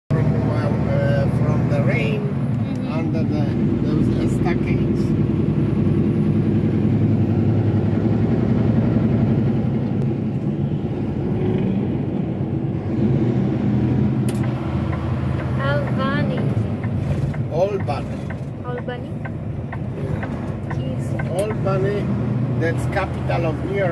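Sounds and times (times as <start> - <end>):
low engine drone: 0.1 - 23.9
road noise: 0.1 - 23.9.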